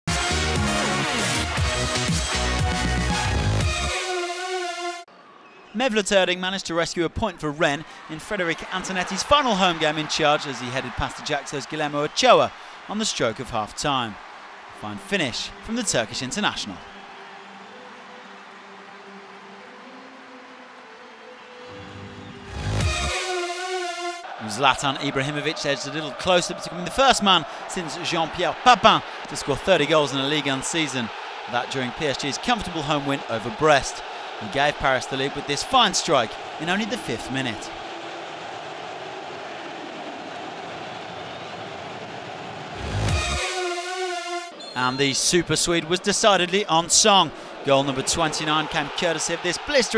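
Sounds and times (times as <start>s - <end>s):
stadium crowd noise: 5.1s - 22.8s, 24.2s - 43.2s, 44.5s - 49.9s.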